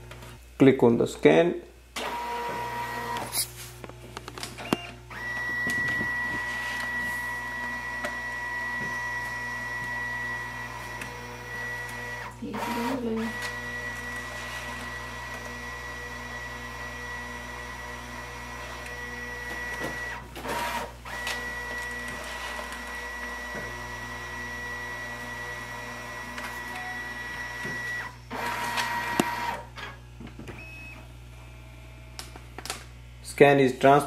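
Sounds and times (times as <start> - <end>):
document feeder motor whine: 1.9 - 33.2.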